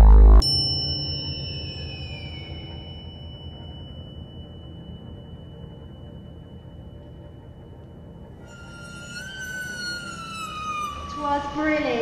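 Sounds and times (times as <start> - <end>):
high held tone: 0.0 - 12.0.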